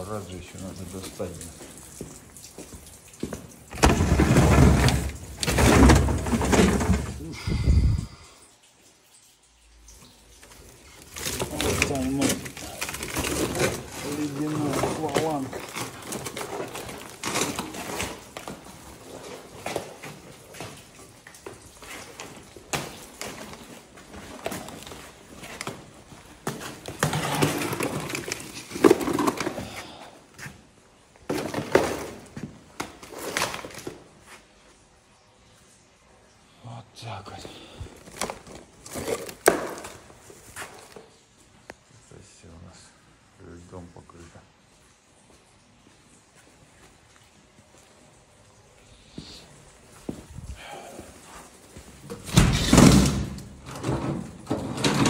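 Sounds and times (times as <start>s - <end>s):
knocks and clatter: 3.7s - 7.2s.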